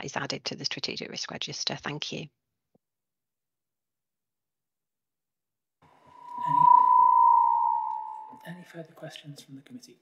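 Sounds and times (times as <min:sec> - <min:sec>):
microphone feedback whistle: 0:06.1 - 0:08.4.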